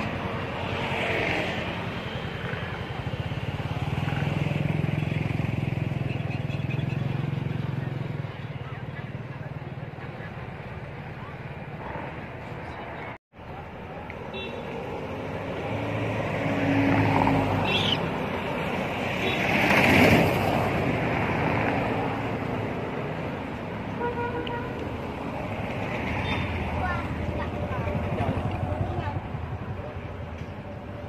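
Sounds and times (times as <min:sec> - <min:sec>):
vehicle passing by: 0:00.0 - 0:10.3, 0:15.1 - 0:23.8.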